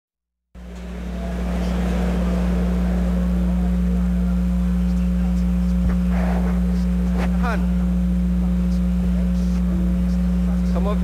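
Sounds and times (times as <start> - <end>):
steady low hum: 0.6 - 11.0.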